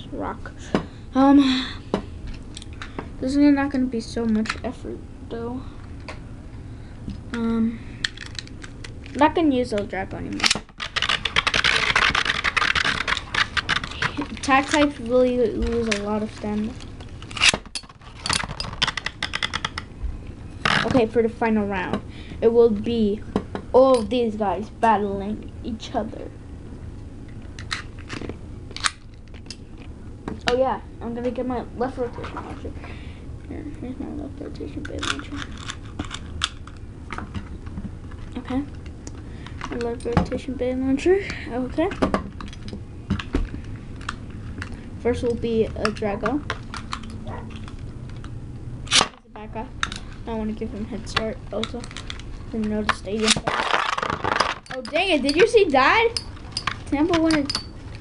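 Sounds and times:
plastic toys clicking on table: 10.8s - 14.8s, 18.3s - 19.9s.

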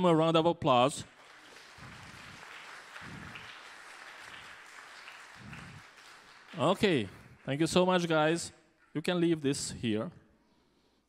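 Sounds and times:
faint audience applauding: 1.0s - 8.4s.

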